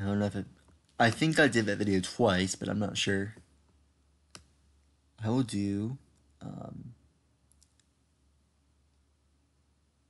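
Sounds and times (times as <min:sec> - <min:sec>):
computer mouse clicks: 0:04.3 - 0:04.9, 0:07.5 - 0:07.9.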